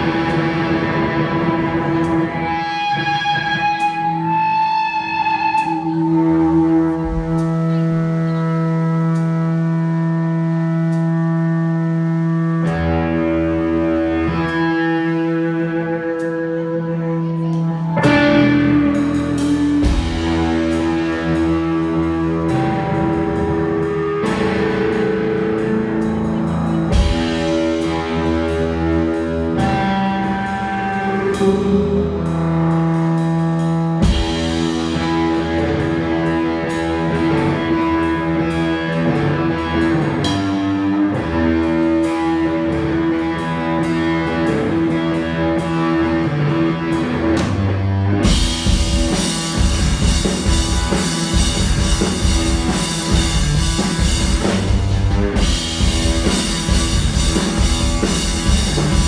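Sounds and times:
distorted electric guitar: 0.0 - 59.0.

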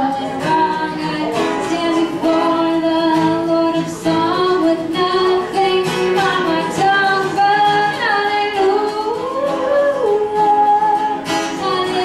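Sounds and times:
acoustic guitar: 0.0 - 12.0.

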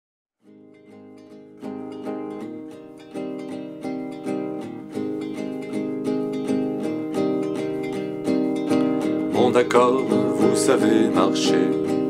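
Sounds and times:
plucked guitar: 0.4 - 12.0.

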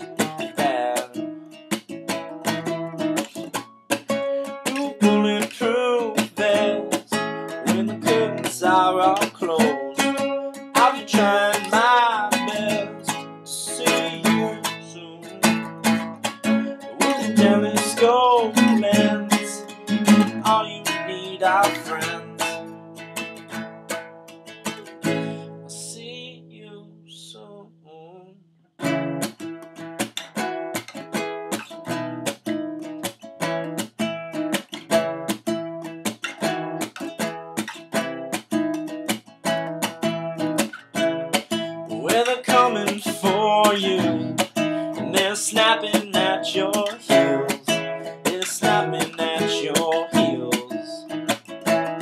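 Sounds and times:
acoustic guitar playing: 0.0 - 27.8, 28.7 - 52.0.

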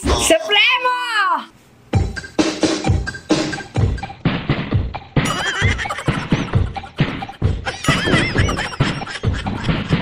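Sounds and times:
upbeat dance music: 2.0 - 7.6.

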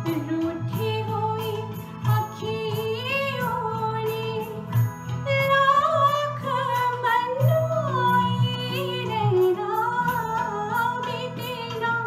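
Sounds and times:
woman singing into a microphone: 0.0 - 12.0.

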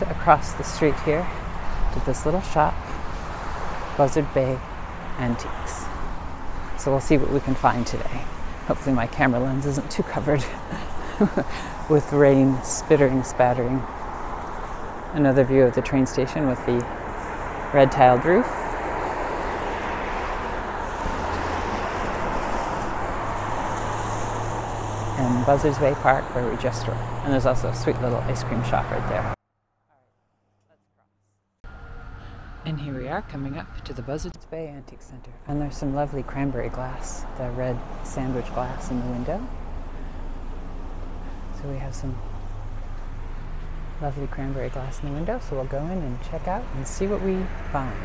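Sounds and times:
cars on wet roads: 0.0 - 29.4, 31.7 - 48.0
street traffic rumble: 0.0 - 29.4, 31.6 - 48.0.

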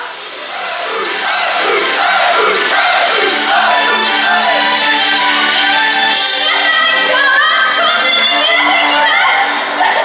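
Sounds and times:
crowd shouting along: 0.0 - 10.0
live pop music: 0.0 - 10.0.

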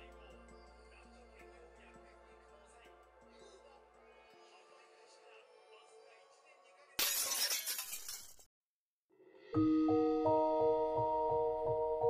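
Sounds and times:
glass shattering: 7.0 - 8.5.

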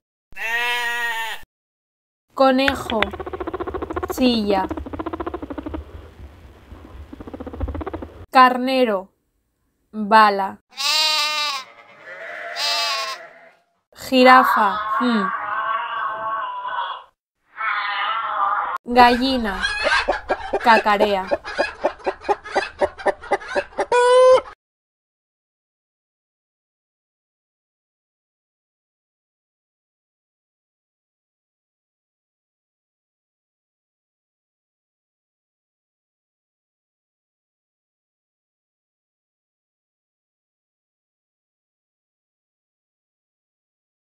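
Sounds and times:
hen clucking: 2.7 - 8.3, 19.0 - 24.6
rabbit buzzing pulses: 2.8 - 8.3.

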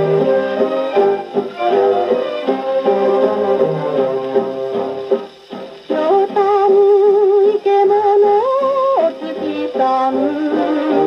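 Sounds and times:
popular song on phonograph: 0.0 - 11.0.

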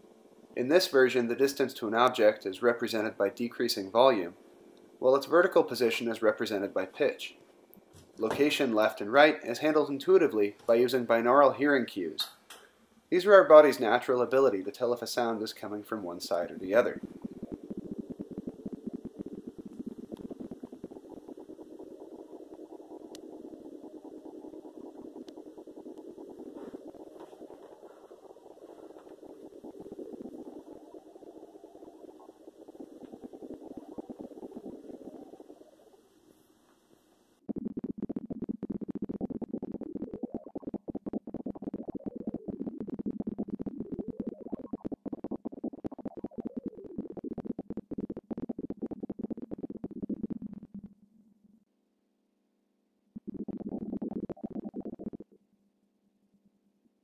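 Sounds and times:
fluttering synthesized tones: 13.6 - 36.5, 37.4 - 50.9, 53.2 - 55.4
pulsing low synthesized tones: 16.3 - 36.1, 37.4 - 50.9, 53.2 - 55.4.

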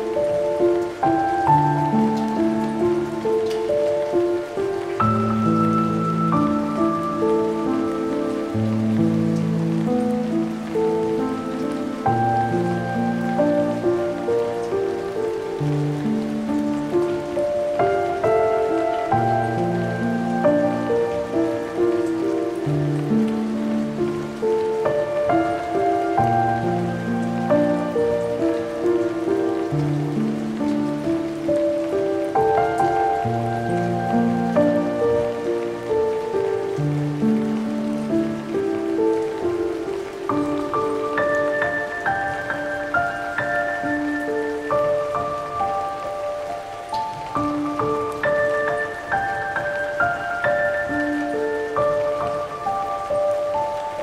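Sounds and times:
rain sound: 0.0 - 54.0
slow solo piano: 0.0 - 54.0.

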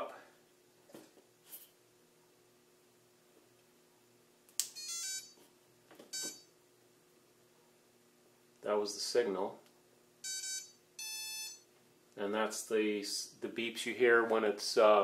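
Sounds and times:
motor beeping: 6.1 - 6.5, 10.2 - 11.6.

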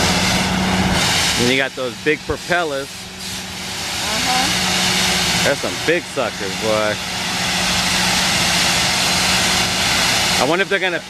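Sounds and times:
high-pressure water blasting hiss: 0.0 - 11.0
machine hum: 0.0 - 11.0.

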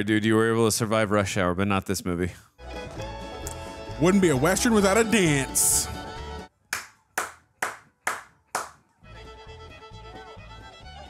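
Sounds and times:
fiddle dance music: 2.6 - 6.4, 8.1 - 11.0
hand claps: 6.7 - 8.9.

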